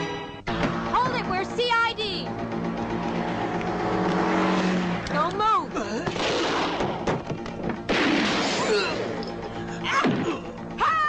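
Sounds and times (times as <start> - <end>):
car engine and road noise: 0.0 - 7.9
steady low drone: 2.2 - 10.8.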